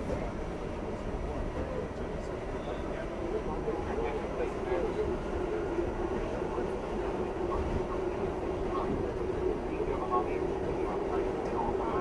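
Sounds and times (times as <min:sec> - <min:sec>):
subway car rumbling in tunnel: 0:00.0 - 0:12.0.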